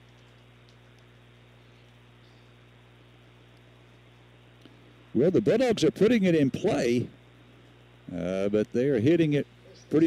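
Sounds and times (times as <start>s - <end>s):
faint steady hum with hiss: 0.0s - 10.0s.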